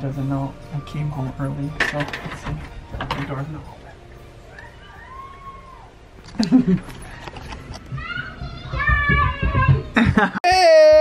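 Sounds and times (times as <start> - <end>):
children squealing: 4.5 - 6.0
footsteps on hardwood floor: 7.8 - 10.3.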